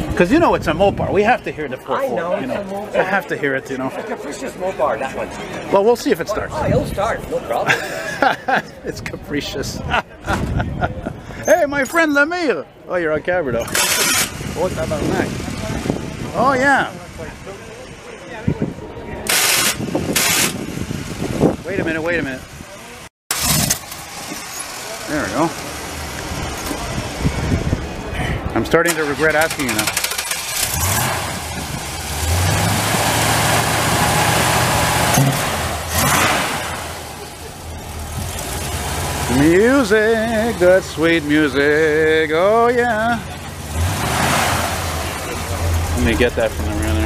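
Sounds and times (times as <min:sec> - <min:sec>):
car engine starting and running: 0:13.5 - 0:18.1, 0:19.2 - 0:47.0
engine hiss: 0:19.2 - 0:21.5, 0:28.9 - 0:41.6.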